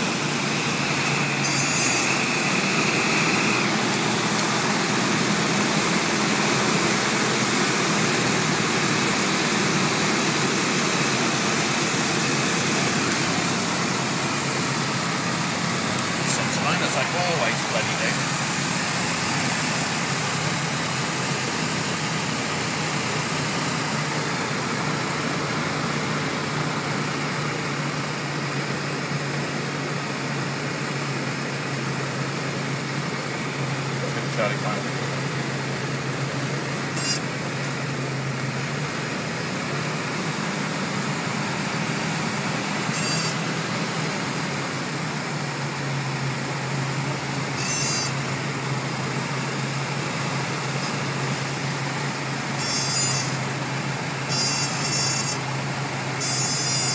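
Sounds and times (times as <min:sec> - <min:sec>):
light aircraft engine and propeller: 0:00.0 - 0:56.9.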